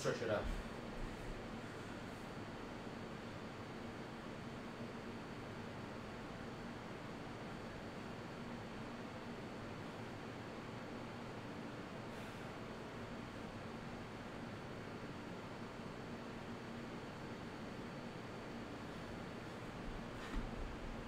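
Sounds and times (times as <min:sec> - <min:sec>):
faint hum: 0:00.0 - 0:21.0.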